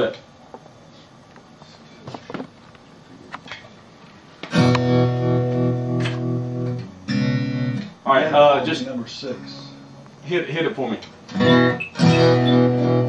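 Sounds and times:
guitar chords with tremolo: 4.5s - 10.2s, 11.3s - 13.0s.

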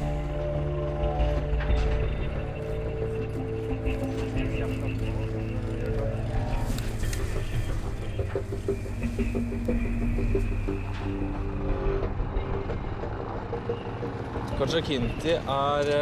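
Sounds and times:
background music: 0.0s - 16.0s
vehicle engine rumble: 0.0s - 16.0s.

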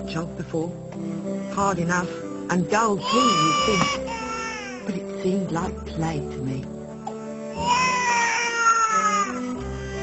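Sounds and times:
background music: 0.0s - 10.0s
baby crying: 3.0s - 4.9s, 7.2s - 10.0s.

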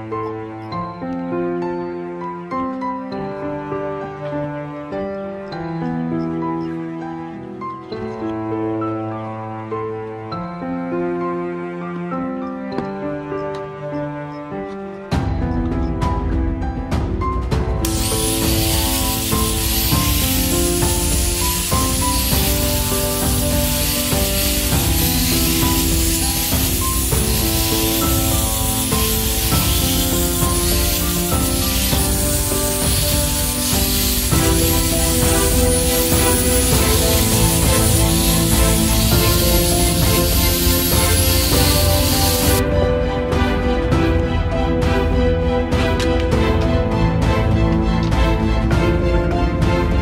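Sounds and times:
background music: 0.0s - 50.0s
angle grinder sanding wood: 17.8s - 42.6s.

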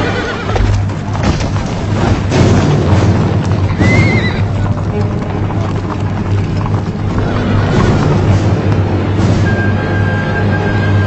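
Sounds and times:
horse whinnying: 0.0s - 0.8s, 3.7s - 4.9s, 6.9s - 8.5s
horses galloping: 0.0s - 11.0s.

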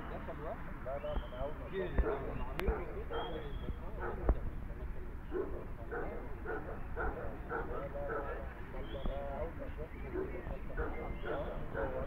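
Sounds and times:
people talking: 0.0s - 12.0s
dog barking: 4.0s - 4.3s, 5.3s - 8.4s, 10.1s - 12.0s.

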